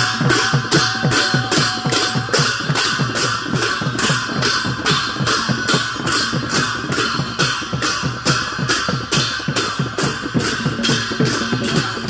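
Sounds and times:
drums beating rapidly: 0.0s - 12.0s
hand cymbals clashing: 0.0s - 12.0s.

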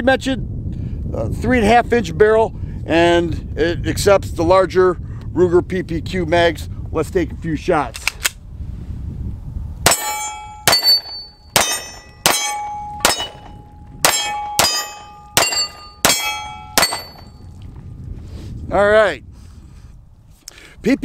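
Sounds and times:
pistol shots: 9.9s - 17.2s
steel targets ringing: 9.9s - 17.5s.

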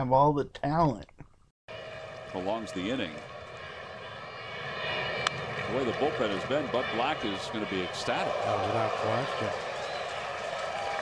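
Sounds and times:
ballpark crowd noise: 1.8s - 3.6s, 5.2s - 11.0s
announcer speaking: 2.4s - 3.2s, 5.7s - 9.5s.

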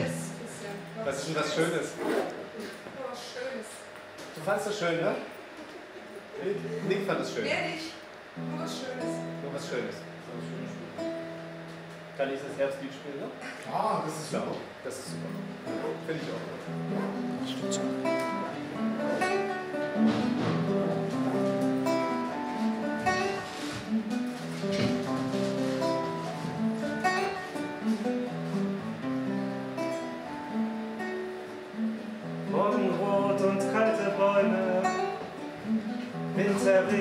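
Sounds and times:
acoustic guitar picking: 0.0s - 2.8s, 6.3s - 12.2s, 14.6s - 37.0s.

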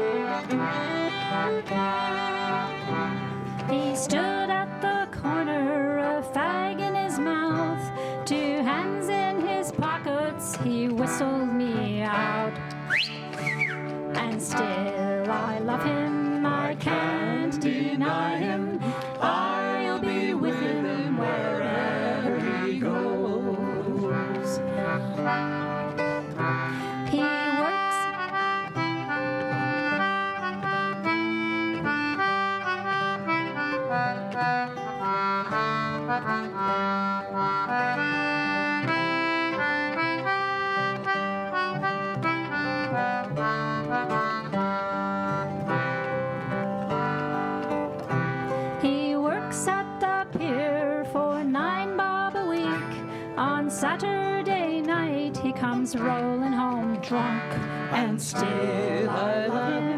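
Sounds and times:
folk band melody: 0.0s - 59.9s
strummed guitar: 0.0s - 59.9s.

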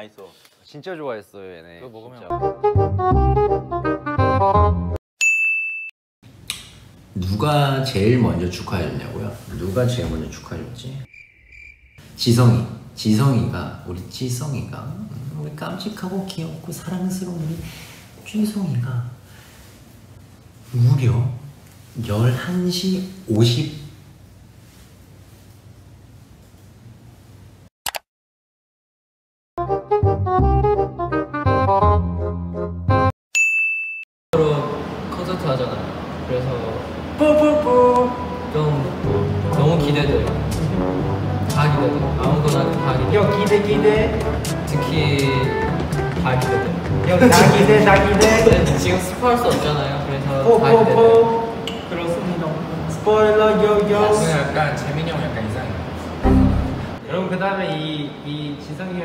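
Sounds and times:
high ding: 5.2s - 5.9s, 33.3s - 34.1s
faint room noise: 6.3s - 11.1s, 12.0s - 27.7s.

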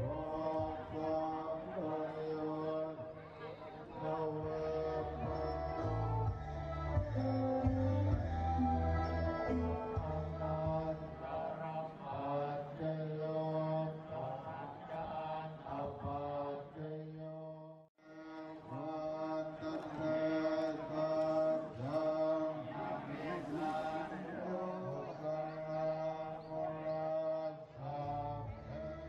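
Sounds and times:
voices chanting in unison: 0.0s - 29.0s.

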